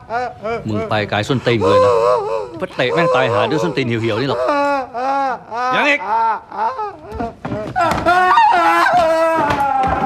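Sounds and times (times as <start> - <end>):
person wailing: 0.0 - 10.0.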